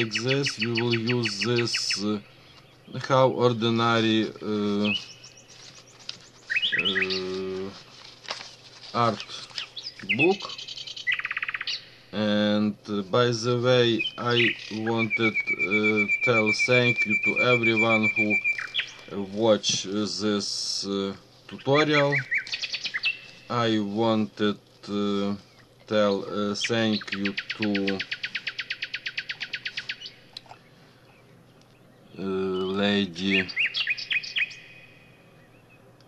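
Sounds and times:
bird trilling: 0.0s - 7.8s, 9.0s - 12.2s, 13.4s - 19.4s, 21.6s - 23.7s, 25.4s - 35.9s.

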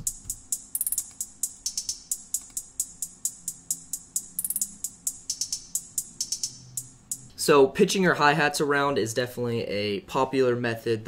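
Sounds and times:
electronic hi-hat loop: 0.0s - 7.4s.

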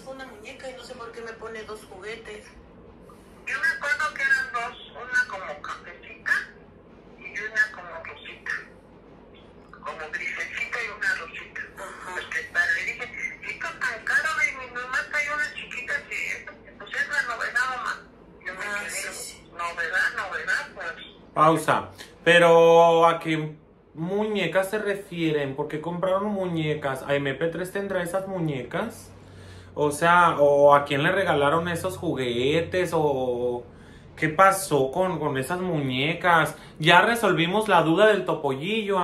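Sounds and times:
voices on phone recording: 0.0s - 39.0s.

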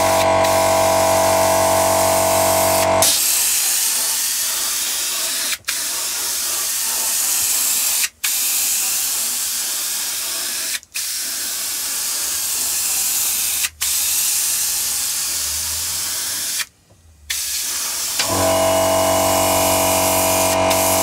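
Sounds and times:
airbrush spraying hiss: 17.3s - 18.2s, 19.7s - 21.0s.

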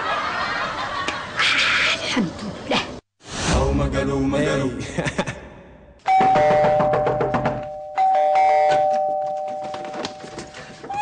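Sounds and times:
two-tone doorbell chime: 6.1s - 10.4s.

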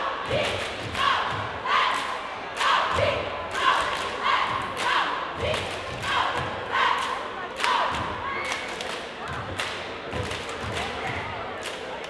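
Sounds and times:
voices chanting together: 0.0s - 8.2s
hand claps: 7.0s - 12.0s.

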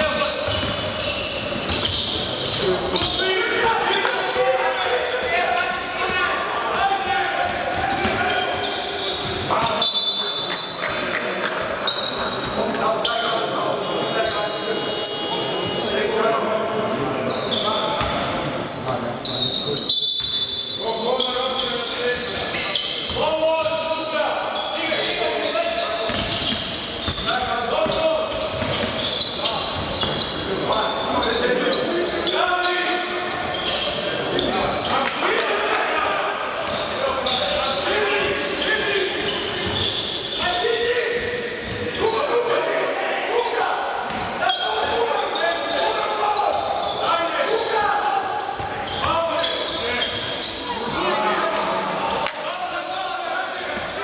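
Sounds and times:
players calling out: 11.8s - 54.0s.

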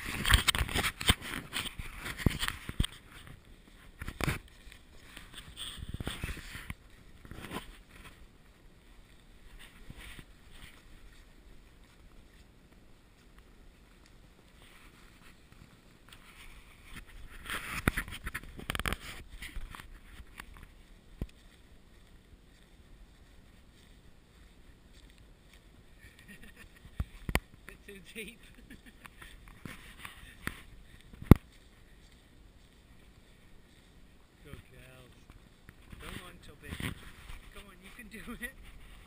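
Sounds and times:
low rumble of wind: 0.0s - 27.7s, 28.4s - 39.0s
footsteps crunching in snow: 0.0s - 39.0s.

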